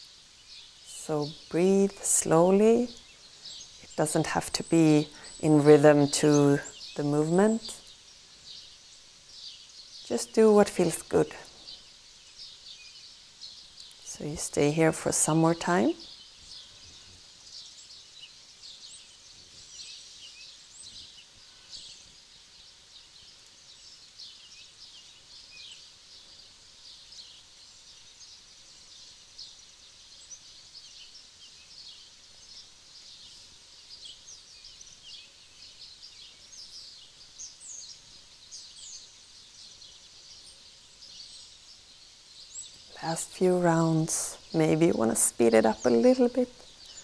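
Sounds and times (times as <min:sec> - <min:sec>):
small birds chirping: 0:00.0 - 0:47.0.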